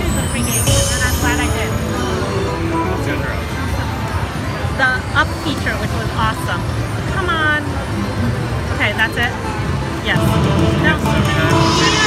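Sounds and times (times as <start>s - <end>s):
gliding electronic tones: 10.9s - 12.0s.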